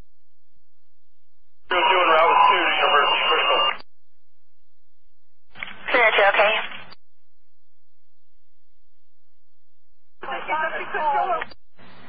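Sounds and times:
voice over police radio: 0:01.7 - 0:03.8, 0:10.2 - 0:11.5.

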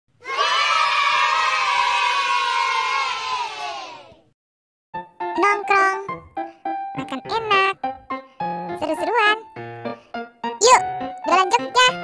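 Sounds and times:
children cheering: 0:00.2 - 0:04.2.

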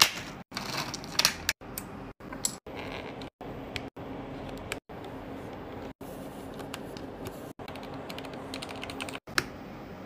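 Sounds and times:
mechanical keyboard keys clacking: 0:07.7 - 0:09.2.

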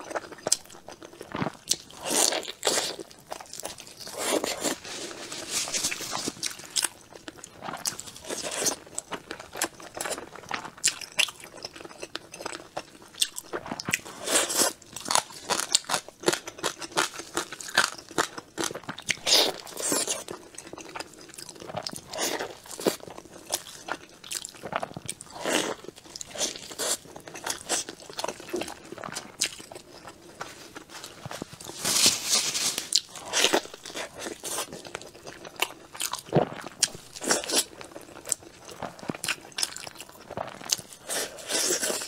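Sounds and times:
person chewing food: 0:00.0 - 0:42.0.

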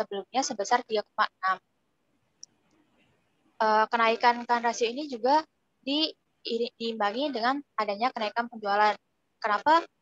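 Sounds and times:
woman speaking: 0:00.0 - 0:01.7, 0:03.6 - 0:10.0.

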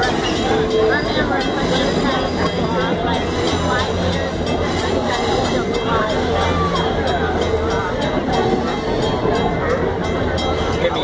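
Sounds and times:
people's voices: 0:00.0 - 0:11.0
train wheels rumbling on rail: 0:00.0 - 0:11.0.

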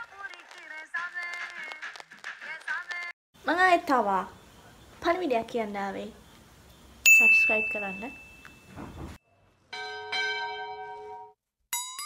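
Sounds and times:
notification bell ringing: 0:07.1 - 0:08.4.

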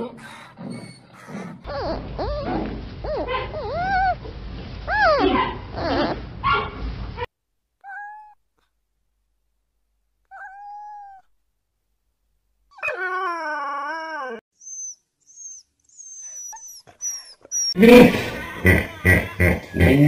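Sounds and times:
dog whimpering: 0:00.0 - 0:04.3, 0:04.9 - 0:06.2, 0:07.8 - 0:08.4, 0:10.3 - 0:11.3, 0:12.8 - 0:18.6
background noise: 0:00.0 - 0:20.0
cat meowing: 0:07.8 - 0:08.4.

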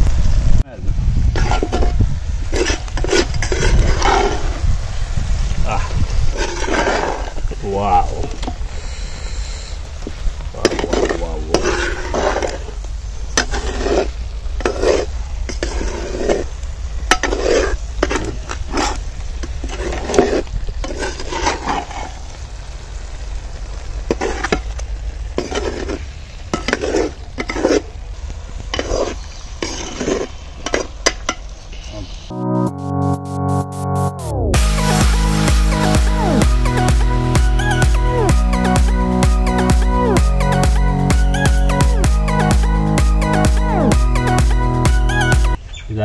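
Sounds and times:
masala sizzling: 0:00.0 - 0:45.7
ladle stirring and scraping: 0:01.3 - 0:04.5, 0:06.3 - 0:07.6, 0:10.1 - 0:12.8, 0:13.4 - 0:22.3, 0:24.1 - 0:28.0, 0:28.6 - 0:31.5.

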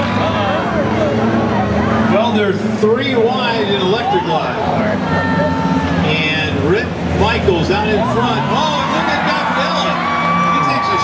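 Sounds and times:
race car engines droning: 0:00.0 - 0:11.0
voices talking: 0:00.0 - 0:11.0.

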